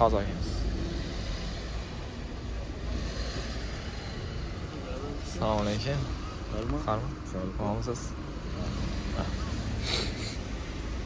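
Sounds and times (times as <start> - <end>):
faint voices: 0.0 - 10.9
car engine idling: 0.0 - 11.0.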